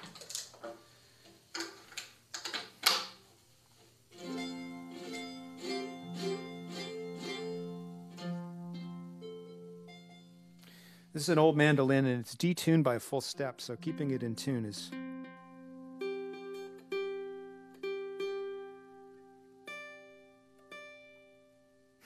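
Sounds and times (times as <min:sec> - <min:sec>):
mandolin picked note by note: 0:12.9 - 0:19.1.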